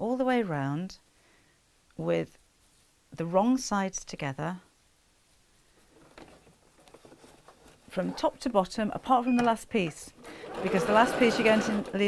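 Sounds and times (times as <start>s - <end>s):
burlap rustling and tapping: 5.8s - 8.4s.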